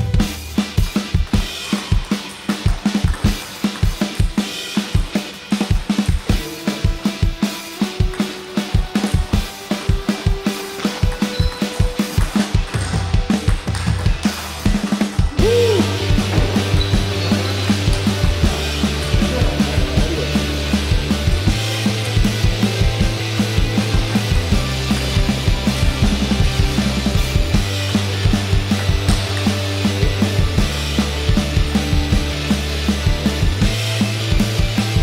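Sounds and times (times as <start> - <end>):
background music with drum beat: 0.0 - 35.0.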